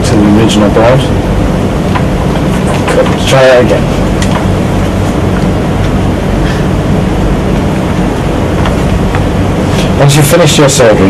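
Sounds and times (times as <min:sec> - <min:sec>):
loud rushing noise: 0:00.0 - 0:11.0
low hum: 0:00.0 - 0:11.0.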